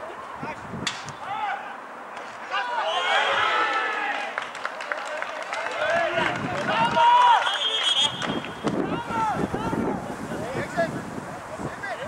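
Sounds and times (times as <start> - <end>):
footballers shouting: 1.2 - 4.4, 5.4 - 10.2
high steady whistle: 7.4 - 8.7.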